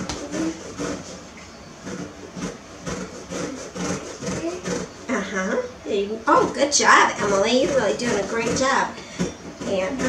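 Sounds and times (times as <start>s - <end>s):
peel rasping on grater: 0.0s - 5.2s, 6.3s - 10.0s.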